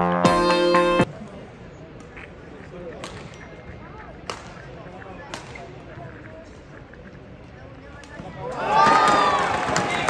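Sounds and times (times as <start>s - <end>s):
murmur of spectators: 1.0s - 10.0s
racket striking shuttlecock: 3.0s - 3.4s, 4.2s - 4.6s, 5.3s - 5.6s.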